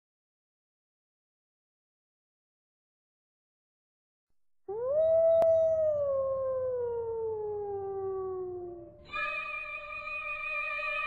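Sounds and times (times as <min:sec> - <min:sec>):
wolf howling: 0:04.7 - 0:09.8.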